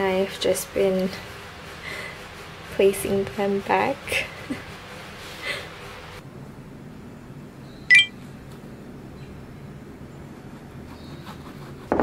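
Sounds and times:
sharp metallic clink: 7.9 - 8.1.

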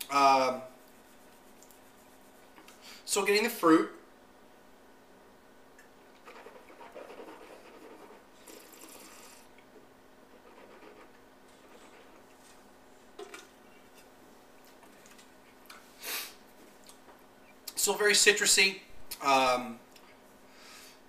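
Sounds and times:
breathing: 2.7 - 3.1, 20.0 - 21.0
sipping and slurping wine: 8.4 - 9.5
short breathy hiss: 15.9 - 16.4.

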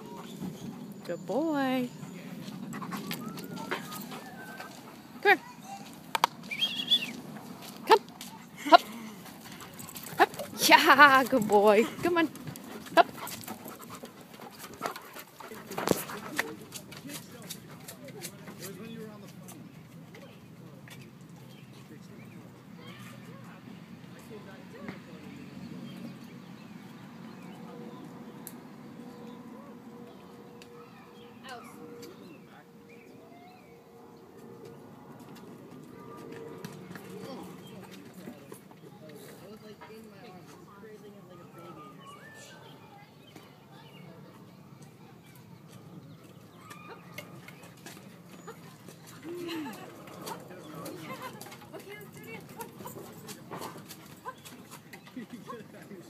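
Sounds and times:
faint distant voices: 0.0 - 56.0.

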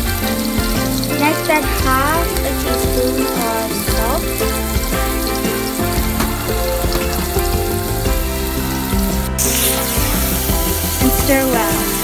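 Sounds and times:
background music: 0.0 - 12.0
onions sizzling in a pan: 0.0 - 12.0.

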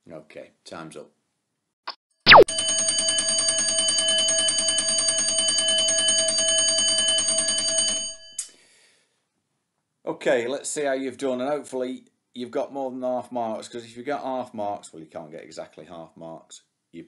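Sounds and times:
timer alarm ringing: 2.3 - 8.4.

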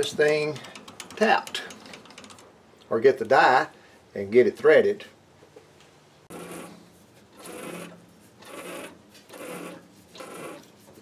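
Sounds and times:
threading die rasping on metal rod: 7.4 - 10.8.

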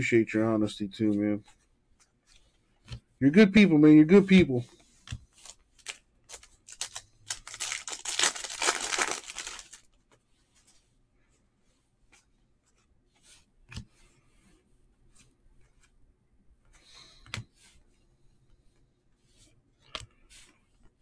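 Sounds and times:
foil wrapper tearing and crinkling: 5.4 - 9.8.

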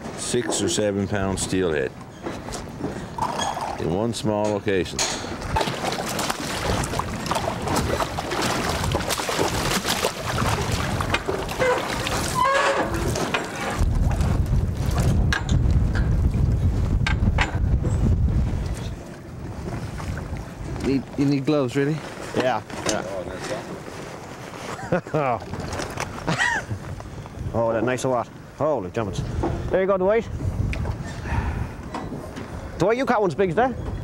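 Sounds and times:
water splashing and sloshing: 0.0 - 28.5
wind rumble on microphone: 4.9 - 21.6, 25.4 - 34.0
fish thrashing at surface: 5.5 - 15.1.

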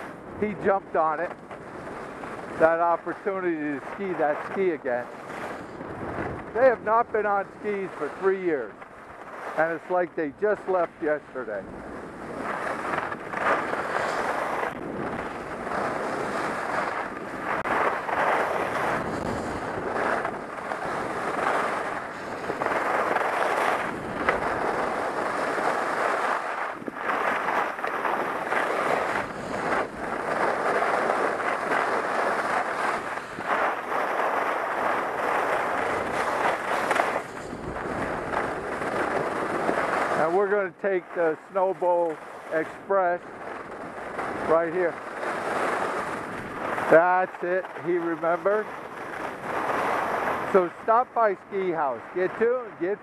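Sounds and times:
skis scraping on hard snow: 0.0 - 53.0
wind on microphone: 0.0 - 53.0.

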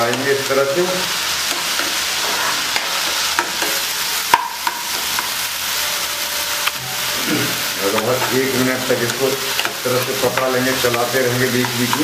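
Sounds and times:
vegetables sizzling in hot oil: 0.0 - 12.0
spatula scraping a wok: 1.3 - 12.0
spatula knocking on pan: 2.8 - 5.3, 9.1 - 12.0.

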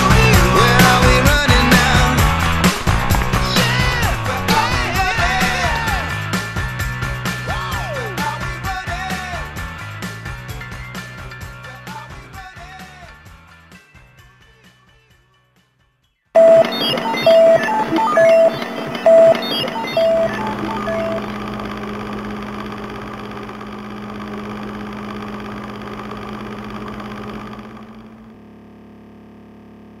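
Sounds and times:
clattering rhythm: 16.4 - 21.6
short beeping tone: 16.4 - 21.6.

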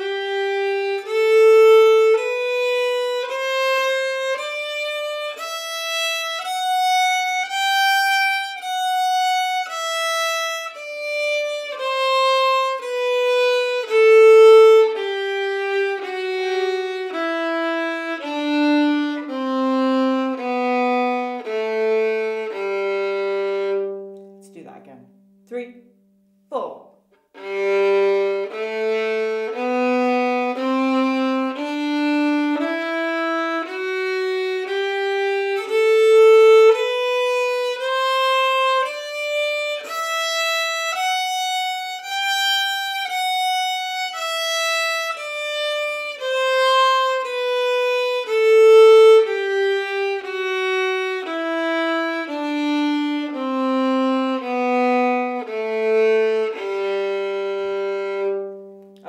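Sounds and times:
solo violin playing a scale: 0.0 - 24.4, 27.3 - 59.0.

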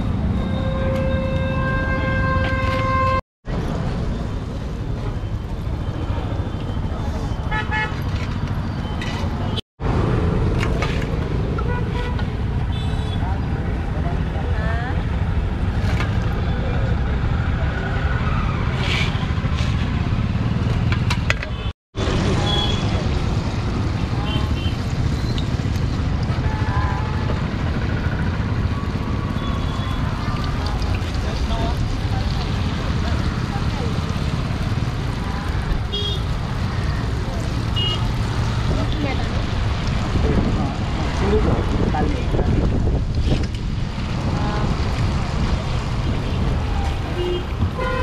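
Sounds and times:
road traffic rumble: 0.0 - 48.0
vehicle horn toots: 0.4 - 3.2, 47.2 - 48.0.

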